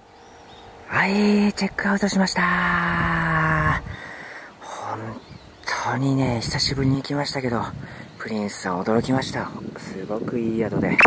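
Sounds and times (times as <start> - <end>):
man breathing in: 4.0 - 4.6.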